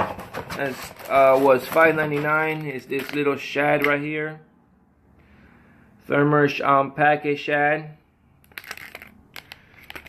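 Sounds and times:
plastic blister pack crinkling: 0.6s - 3.9s, 8.4s - 10.0s.

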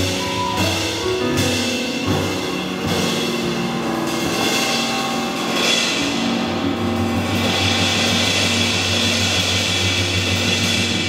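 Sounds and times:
drum kit with cymbals: 0.0s - 11.0s
grand piano: 0.0s - 11.0s
upright double bass: 0.0s - 11.0s.

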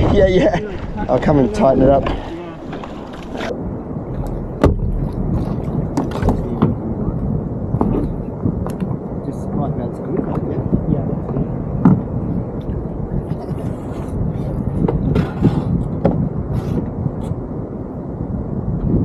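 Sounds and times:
wind rumble: 0.0s - 19.0s
water slapping against hulls: 4.1s - 9.1s, 10.0s - 17.0s.

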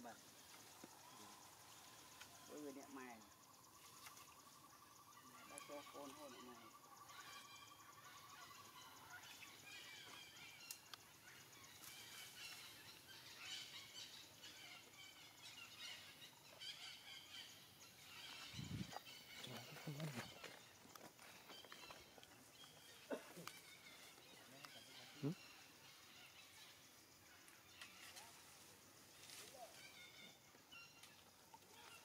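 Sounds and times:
small birds chirping: 0.0s - 32.0s.

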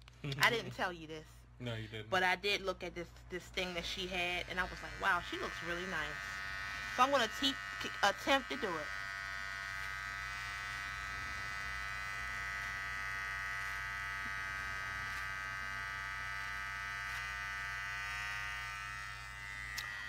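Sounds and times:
electric hair clippers buzzing: 3.6s - 20.0s.

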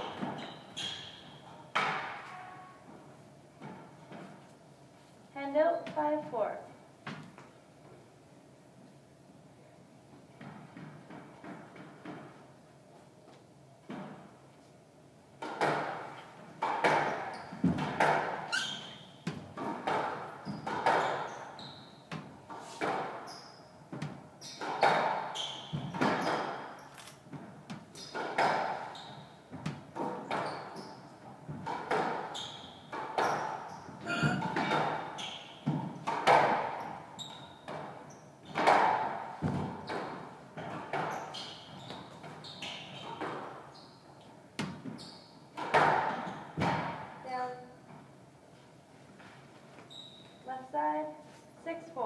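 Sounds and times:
shoes squeaking on wooden floor: 0.0s - 4.4s, 16.8s - 38.8s, 39.4s - 46.8s, 49.2s - 50.5s
squash ball hits: 23.9s - 26.7s, 27.3s - 28.9s, 32.9s - 37.0s, 37.6s - 41.2s, 45.6s - 47.1s.

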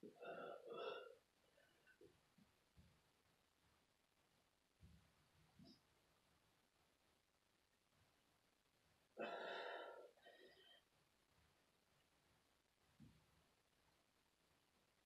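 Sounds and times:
faint breath: 0.1s - 1.9s, 9.2s - 10.9s.

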